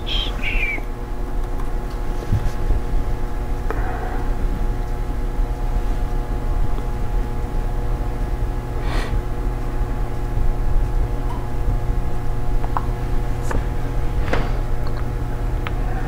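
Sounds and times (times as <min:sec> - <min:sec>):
low machinery hum with tones: 0:00.0 - 0:16.0.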